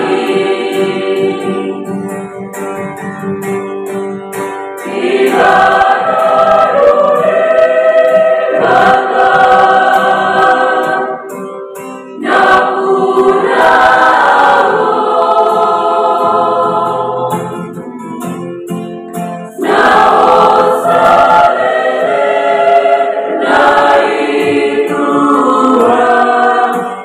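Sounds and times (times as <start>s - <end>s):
choir singing a hymn: 0.0s - 2.5s, 4.8s - 18.2s, 19.5s - 27.0s
acoustic guitar: 0.0s - 27.0s.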